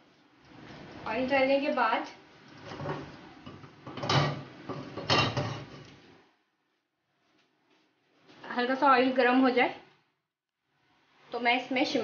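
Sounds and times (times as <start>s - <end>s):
kitchen handling clatter: 2.6s - 5.9s.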